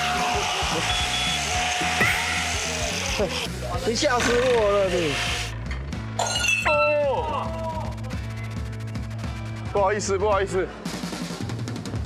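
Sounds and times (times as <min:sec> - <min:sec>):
angle grinder whine: 0:00.0 - 0:05.6
background music: 0:00.0 - 0:12.0.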